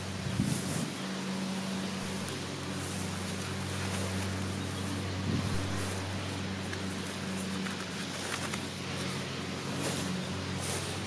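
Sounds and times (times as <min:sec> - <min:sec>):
engine humming: 0:00.0 - 0:11.0.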